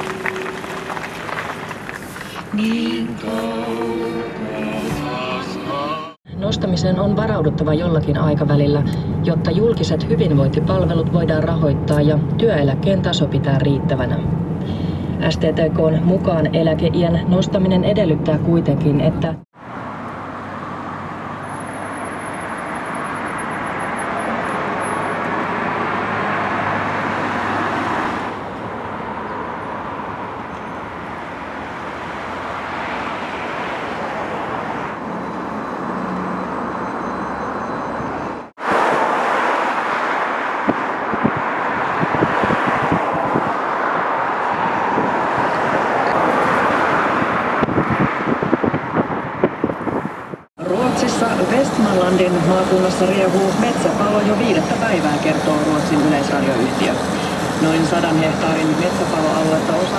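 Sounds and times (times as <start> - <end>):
road traffic rushing past: 0.0 - 59.9.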